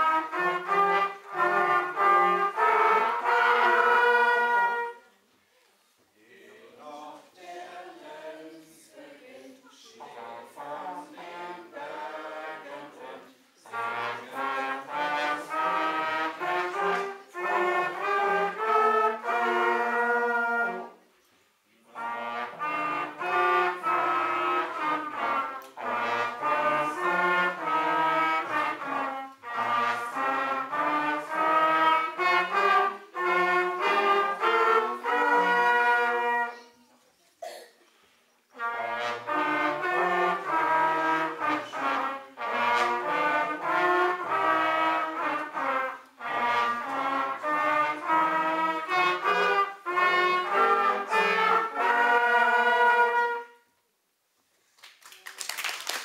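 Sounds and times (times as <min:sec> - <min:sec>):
brass ensemble playing a melody: 0:00.0 - 0:05.3, 0:10.0 - 0:21.1, 0:21.8 - 0:36.8, 0:38.5 - 0:53.7.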